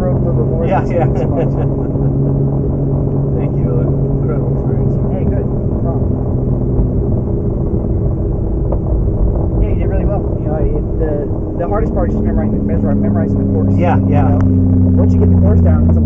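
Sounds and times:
car engine drone from inside: 0:00.0 - 0:16.0.

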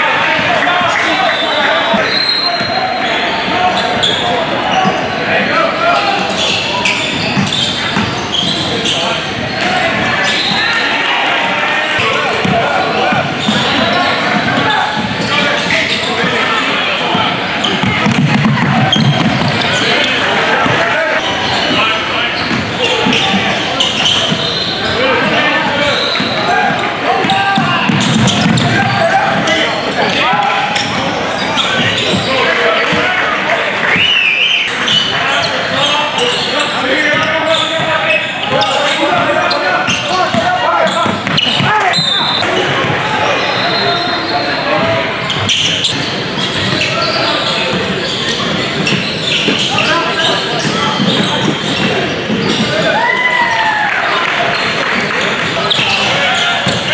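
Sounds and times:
chatter and shouts: 0:00.0 - 0:56.9.

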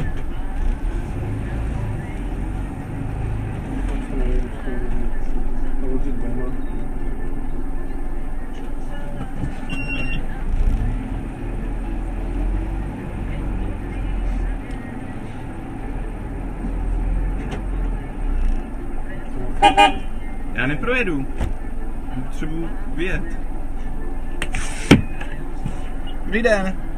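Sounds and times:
bus engine idling: 0:00.0 - 0:26.9
vehicle horn toots: 0:19.6 - 0:20.2.

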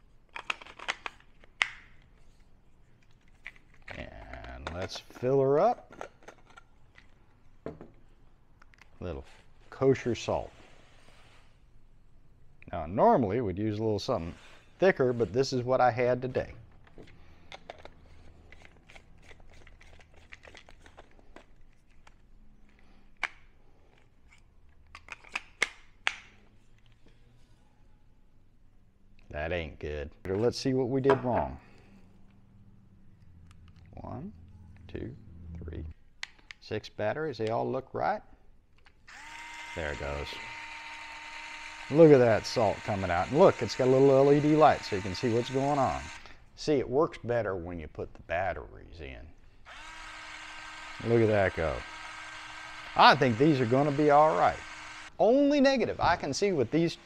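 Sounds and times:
plastic clicks of electric grinders: 0:38.8 - 0:46.3, 0:49.7 - 0:55.2.

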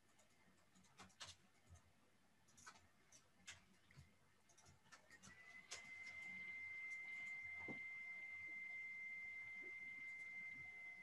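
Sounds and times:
faint high-pitched whine: 0:00.0 - 0:11.0.

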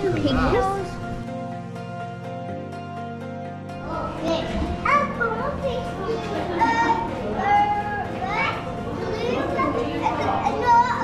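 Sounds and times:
children calling and shrieking: 0:03.8 - 0:11.0.

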